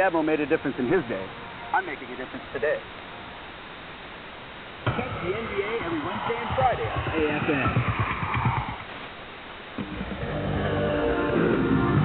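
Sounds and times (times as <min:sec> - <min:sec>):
radio static hiss: 0:00.0 - 0:12.0
music over radio: 0:04.8 - 0:08.9.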